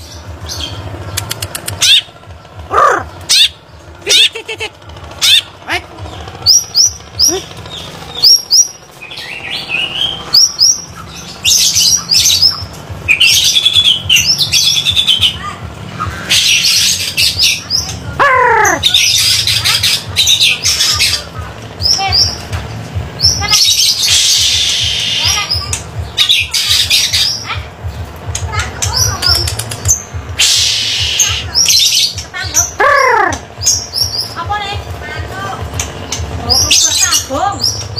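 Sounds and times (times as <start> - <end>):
songbirds chirping and trilling: 0.0 - 37.9.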